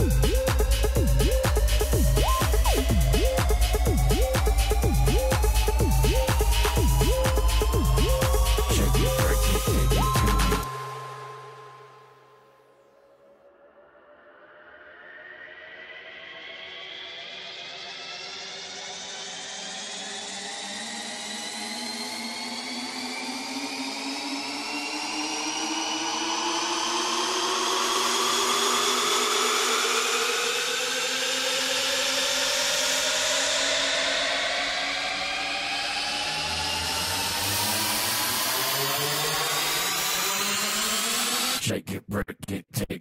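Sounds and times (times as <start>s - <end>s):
electronic drum beat: 0.0s - 11.5s
synth riser gliding upward: 0.0s - 12.3s, 33.6s - 41.6s.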